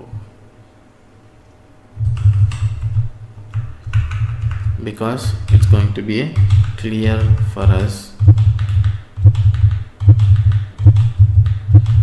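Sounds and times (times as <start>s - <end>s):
computer keyboard keystrokes: 2.0s - 12.0s.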